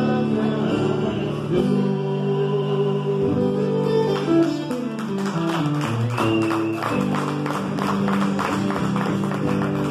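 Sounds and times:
acoustic guitar strumming chords: 0:00.0 - 0:09.9.

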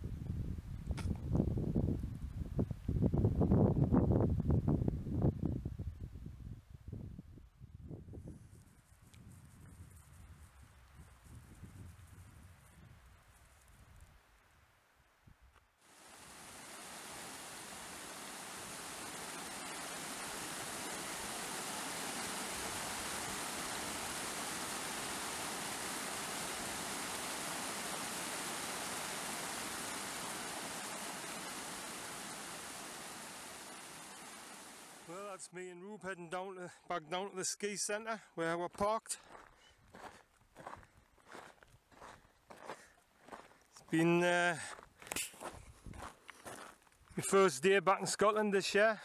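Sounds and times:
stream running over rocks: 0:15.8 - 0:35.3
footsteps on gravel path: 0:38.7 - 0:47.3.

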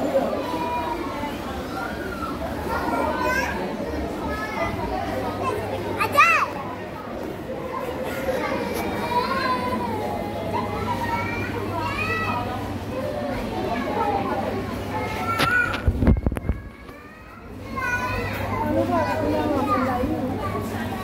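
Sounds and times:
children chattering and calling out: 0:00.0 - 0:21.0.

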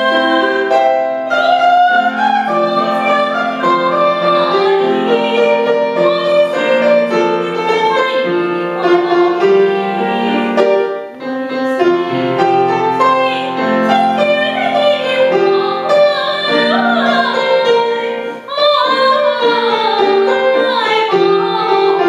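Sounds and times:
grand piano accompaniment: 0:00.0 - 0:22.0
woman singing classical style: 0:00.0 - 0:22.0.

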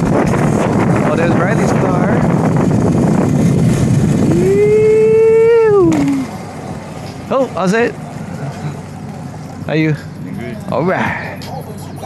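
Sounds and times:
e-bike ride noise: 0:00.0 - 0:12.0
wind rushing over microphone: 0:00.0 - 0:12.0.

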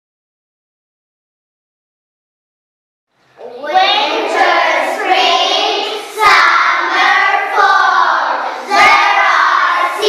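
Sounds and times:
children speaking in unison: 0:03.3 - 0:10.0.

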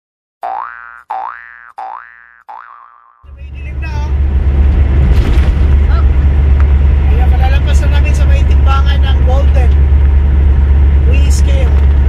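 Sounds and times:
rising electronic boing notes: 0:00.4 - 0:03.2
low rumble: 0:03.3 - 0:12.0.

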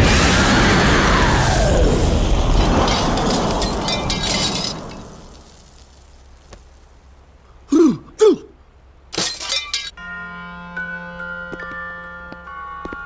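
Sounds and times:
cartoon blast rumble: 0:00.0 - 0:03.2
crackling debris: 0:00.0 - 0:07.1, 0:09.1 - 0:09.9
short falling vocal sounds: 0:07.7 - 0:08.6.

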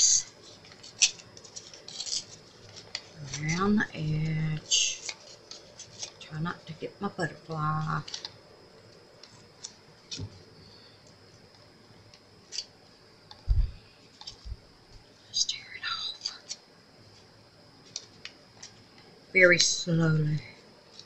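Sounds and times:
paper tearing and rustling: 0:00.4 - 0:03.8, 0:04.7 - 0:06.2.

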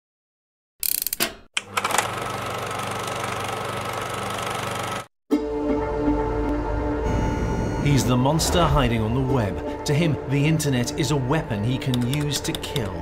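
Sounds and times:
low music drone: 0:05.4 - 0:12.3
pulsing digital buzz: 0:07.0 - 0:08.2.

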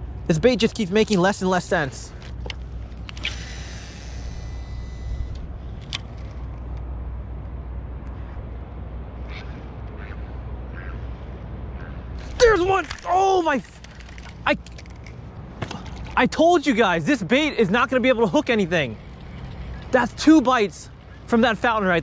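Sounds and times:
steady low rumble: 0:00.0 - 0:22.0
fishing reel spool whirring: 0:02.4 - 0:06.6, 0:17.2 - 0:22.0
man exclaiming: 0:12.4 - 0:13.7.

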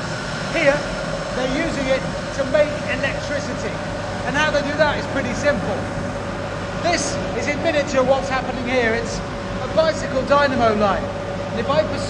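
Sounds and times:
turbine and generator hum: 0:00.0 - 0:12.0
man talking: 0:00.5 - 0:06.0, 0:06.8 - 0:12.0.

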